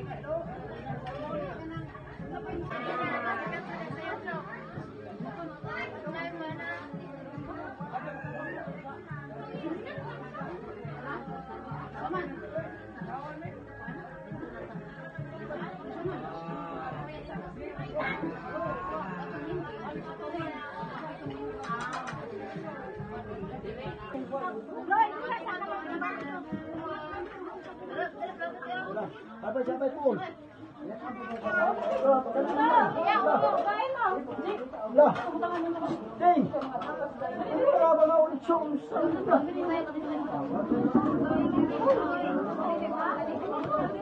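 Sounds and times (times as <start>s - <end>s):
background music with steady beat: 0.0s - 27.8s
people chatting: 0.0s - 29.4s, 30.1s - 44.0s.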